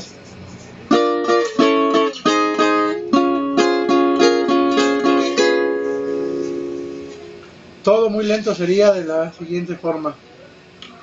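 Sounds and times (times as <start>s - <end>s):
nylon-string guitar plucked: 0.9s - 7.5s.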